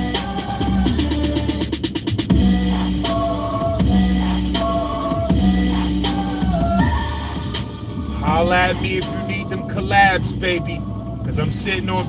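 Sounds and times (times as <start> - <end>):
car engine and road noise: 0.0 - 12.0
rap beat on car stereo: 0.0 - 12.0
man talking loudly: 8.2 - 12.0.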